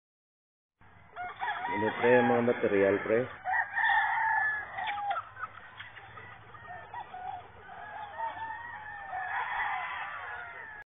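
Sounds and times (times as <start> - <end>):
chickens clucking: 0.9 - 10.8
rooster crowing: 1.1 - 10.9.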